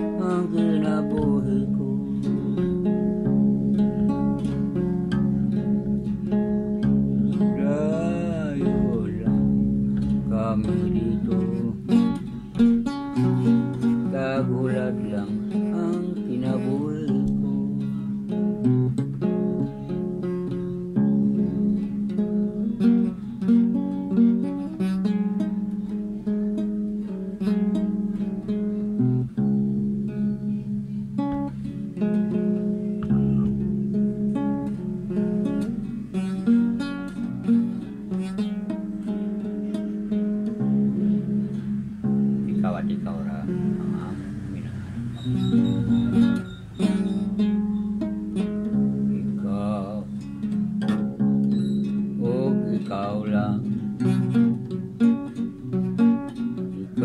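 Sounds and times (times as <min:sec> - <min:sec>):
acoustic guitar music: 0:00.0 - 0:57.0.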